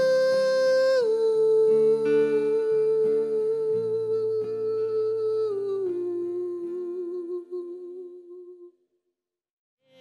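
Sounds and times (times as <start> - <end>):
strummed guitar chords: 1.6 - 7.0.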